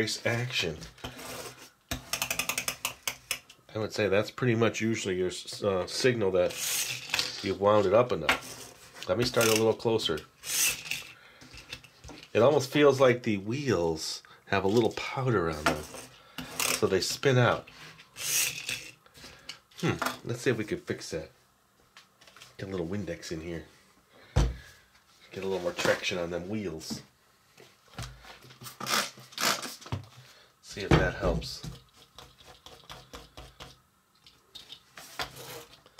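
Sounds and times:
toy car wheels hissing: 0:06.5 - 0:07.3, 0:10.4 - 0:11.1, 0:18.2 - 0:18.9.

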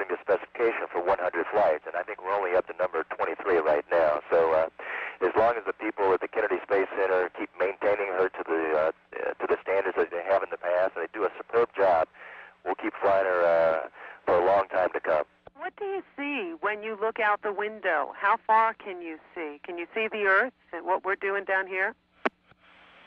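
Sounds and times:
man speaking over radio: 0:00.0 - 0:15.2
faint steady hum: 0:00.0 - 0:23.0.

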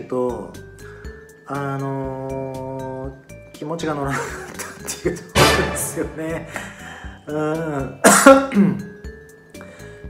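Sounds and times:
soft background music: 0:00.0 - 0:10.0
man clearing his throat: 0:08.0 - 0:08.9.

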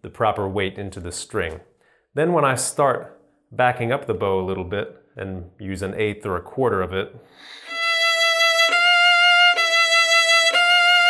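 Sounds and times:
violin bowing high note: 0:07.6 - 0:11.0.

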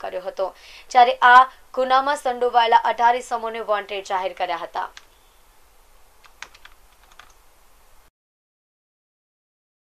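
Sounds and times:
low steady hiss: 0:00.0 - 0:08.1
faint irregular clicks: 0:06.2 - 0:07.4.

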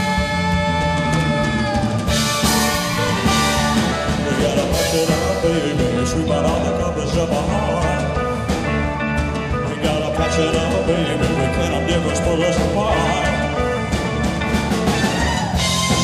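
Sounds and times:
rock band playing: 0:00.0 - 0:16.0.

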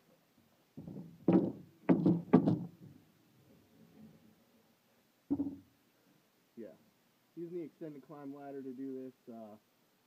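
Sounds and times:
wooden cover thunks: 0:05.3 - 0:05.7.

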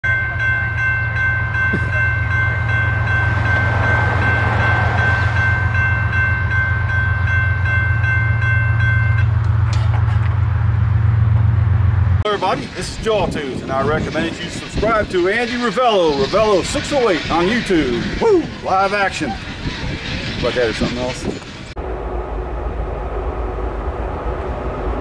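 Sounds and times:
railroad crossing bell ringing: 0:00.0 - 0:10.0
low rumble: 0:08.9 - 0:25.0.

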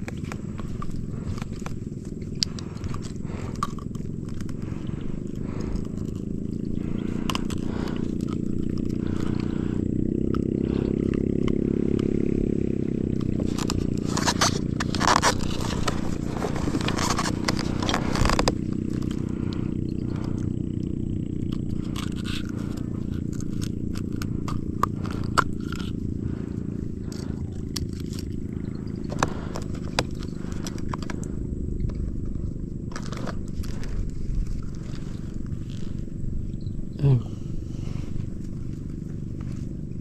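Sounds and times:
steady low rumble: 0:00.0 - 0:40.0.

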